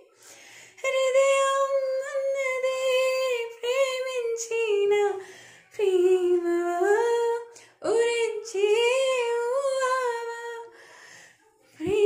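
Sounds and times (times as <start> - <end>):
woman singing unaccompanied: 0.8 - 10.8, 11.7 - 12.0.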